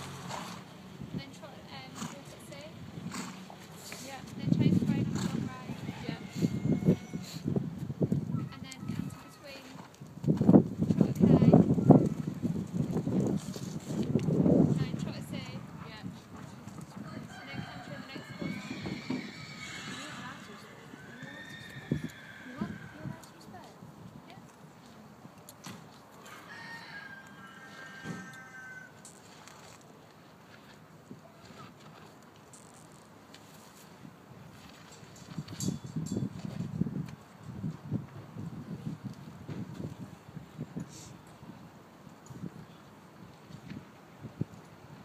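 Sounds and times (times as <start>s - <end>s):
horse hooves on soft sand: 0.0s - 26.5s
rooster crowing: 5.7s - 7.4s, 17.3s - 22.6s, 26.2s - 29.0s.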